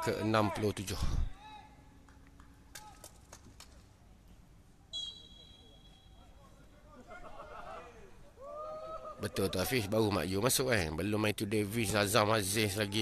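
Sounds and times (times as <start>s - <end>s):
referee's whistle: 4.9s - 6.2s.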